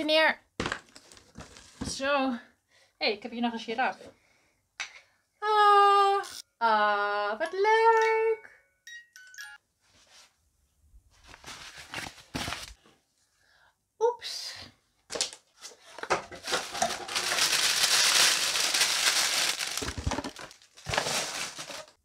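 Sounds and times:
plastic sheeting crinkling: 16.4s - 22.0s.

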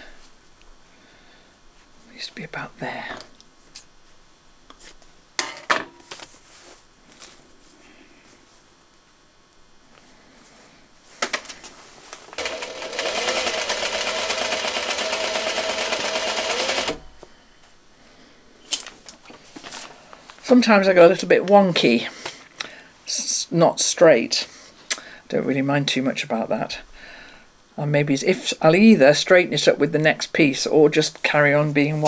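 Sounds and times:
sewing machine running fast: 12.4s - 17.0s.

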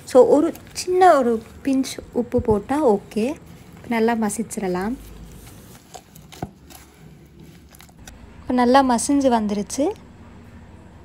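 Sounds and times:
mashing soft fruit: 0.0s - 8.2s.

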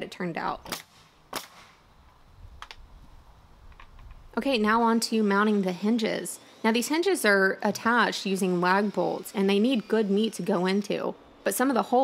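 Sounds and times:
nail gun firing: 0.7s - 1.8s.

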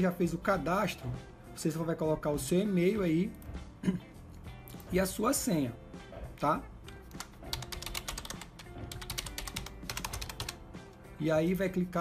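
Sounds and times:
quiet background music: 0.0s - 12.0s
keyboard typing: 6.8s - 10.6s.

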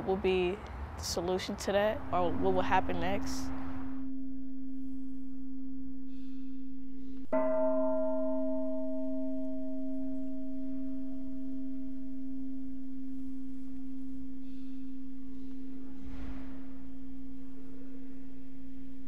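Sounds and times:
steady low hum: 1.7s - 19.0s
meditation bell ringing: 2.0s - 19.0s.

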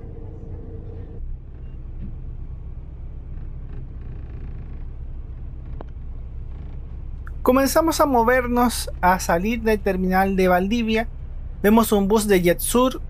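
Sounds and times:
bus diesel engine idling: 0.0s - 13.0s.

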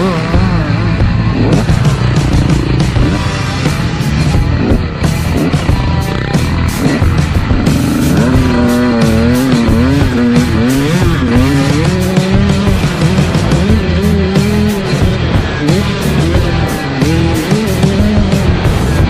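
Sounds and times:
dirt bike engine revving: 0.0s - 19.0s
rock music: 0.0s - 19.0s.

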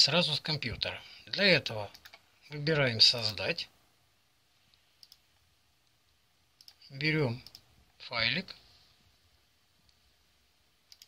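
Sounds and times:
faint computer mouse clicks: 4.7s - 5.2s, 7.4s - 7.6s.

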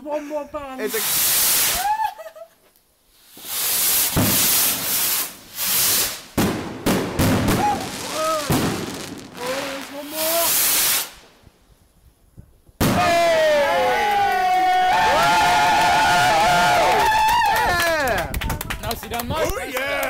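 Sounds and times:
firework shells bursting: 0.8s - 1.9s, 3.1s - 11.9s, 12.6s - 13.1s
rockets launching with hissing: 0.8s - 2.1s, 3.0s - 13.7s.

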